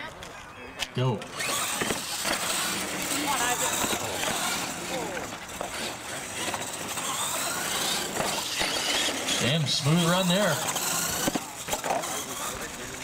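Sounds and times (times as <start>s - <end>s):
toy trucks motors racing: 0.0s - 13.0s.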